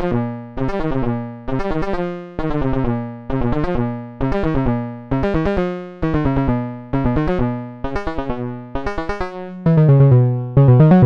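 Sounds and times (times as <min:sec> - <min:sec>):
analog synthesizer sequenced pattern: 0:00.0 - 0:11.0.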